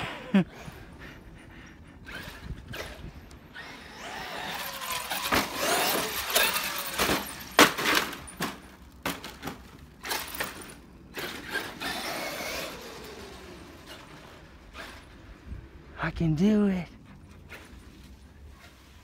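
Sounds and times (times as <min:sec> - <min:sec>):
tyres on dirt: 0:00.0 - 0:15.9
electric motor whining: 0:02.0 - 0:07.1, 0:11.2 - 0:15.1.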